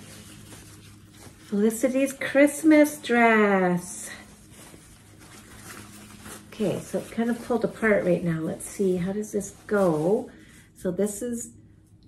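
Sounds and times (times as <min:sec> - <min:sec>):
cloth rustling: 0:00.0 - 0:10.8.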